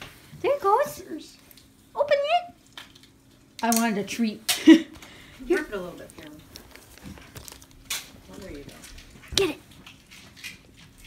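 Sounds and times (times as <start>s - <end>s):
wrapping paper crinkling: 5.5s - 11.0s.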